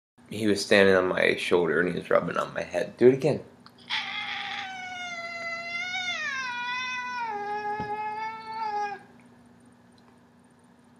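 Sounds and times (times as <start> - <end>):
cat meowing long: 3.9 - 9.1.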